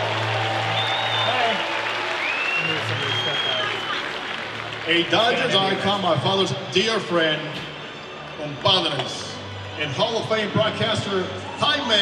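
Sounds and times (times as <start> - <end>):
crowd applauding: 0.0 - 6.5
high whistle-like tones: 2.2 - 4.0.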